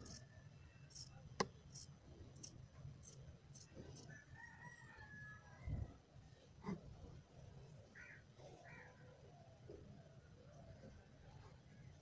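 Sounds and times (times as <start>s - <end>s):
distant rooster crowing: 4.0s - 6.0s.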